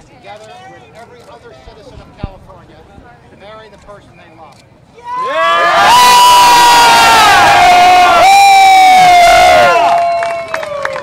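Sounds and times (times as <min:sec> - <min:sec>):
crowd cheering: 0:05.0 - 0:11.0
high-pitched whoops and screams: 0:05.0 - 0:11.0
people clapping: 0:08.8 - 0:11.0.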